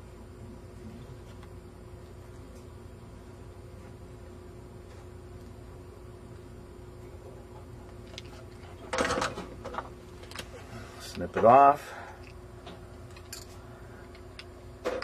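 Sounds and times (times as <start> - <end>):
faint steady hum: 0.0 - 15.0.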